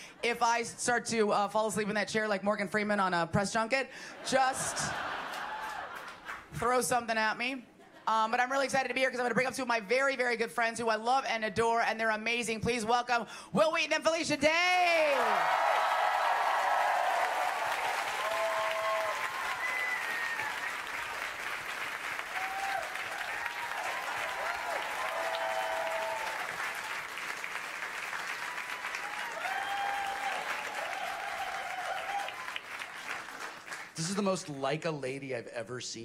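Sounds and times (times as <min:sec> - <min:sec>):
audience applauding: 0:04.8 - 0:06.5, 0:15.1 - 0:34.2.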